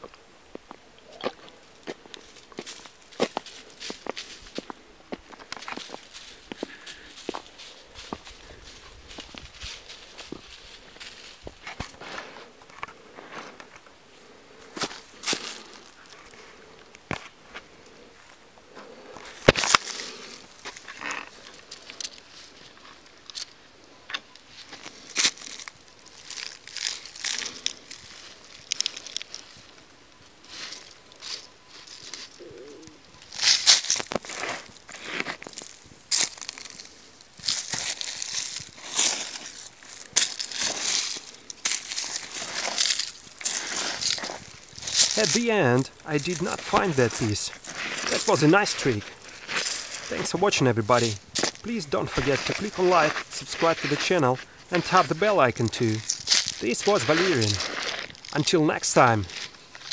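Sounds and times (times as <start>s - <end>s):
dry leaves and soil crunching: 0.0s - 59.9s.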